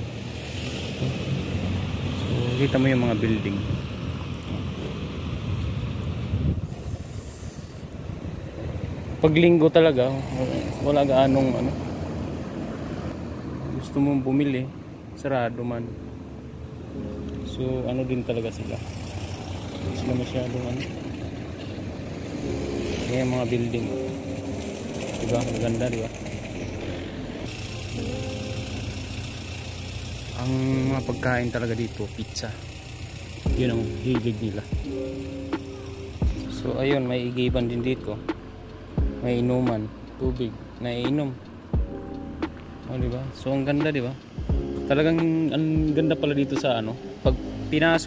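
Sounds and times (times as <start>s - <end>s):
car driving slowly: 0.0s - 48.0s
wind rumbling on microphone: 3.6s - 9.3s
brief higher hiss: 6.7s - 7.9s
background hiss: 6.7s - 8.4s, 27.4s - 37.5s
car engine running: 23.0s - 41.1s.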